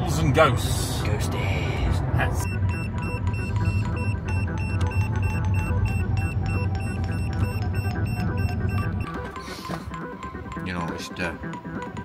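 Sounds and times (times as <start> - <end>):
steady low rumble: 0.0 - 9.1
background music: 1.9 - 12.0
short high beeps: 2.4 - 9.5.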